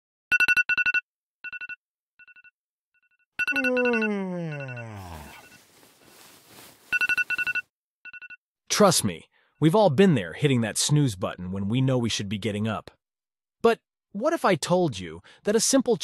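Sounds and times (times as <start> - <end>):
smartphone alarm ringtone trills: 3.4 - 5.6, 6.9 - 8.4.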